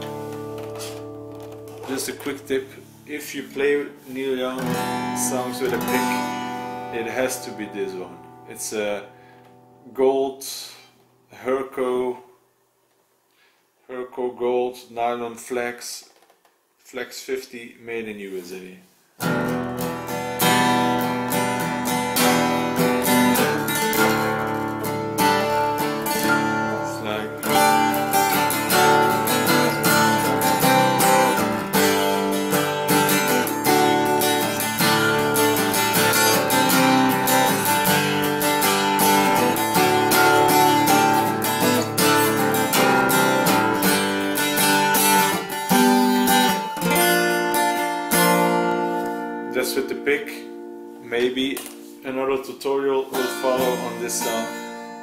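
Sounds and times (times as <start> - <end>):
acoustic guitar chord strummed: 0.0 - 10.0, 19.2 - 55.0
person speaking: 1.8 - 9.1, 9.8 - 12.4, 13.8 - 16.2, 16.8 - 18.9, 26.2 - 28.1, 49.0 - 54.7.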